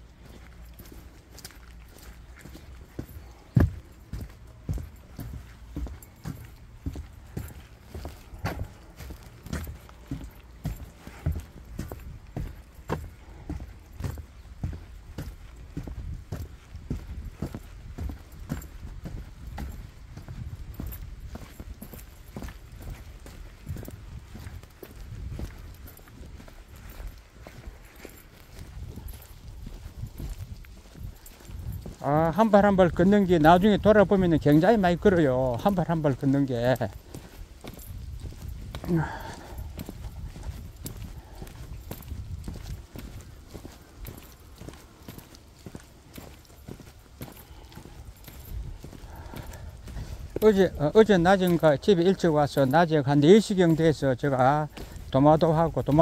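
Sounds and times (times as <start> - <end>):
footsteps on dirt trail: 0.0 - 56.0.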